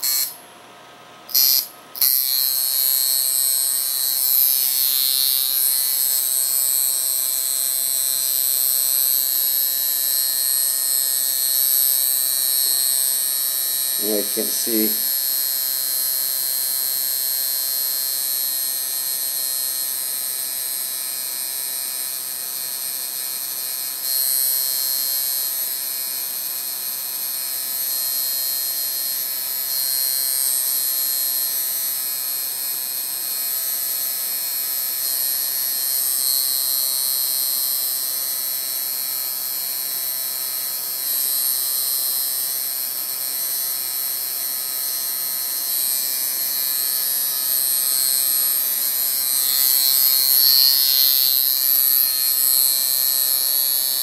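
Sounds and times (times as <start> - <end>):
tattoo machine buzzing: 0.0 - 0.6, 1.2 - 54.0.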